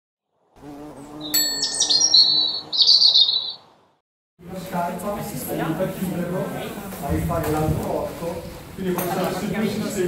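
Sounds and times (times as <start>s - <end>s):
bird-like chirping: 1.0s - 4.0s.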